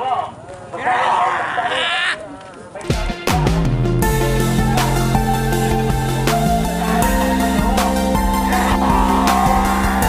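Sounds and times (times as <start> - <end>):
men yelling wavering calls: 4.2 - 10.0.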